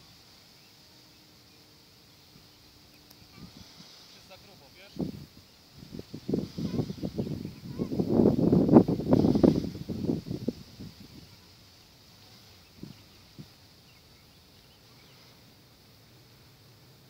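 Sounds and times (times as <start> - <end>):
wind buffeting microphone: 3.2 - 14.0.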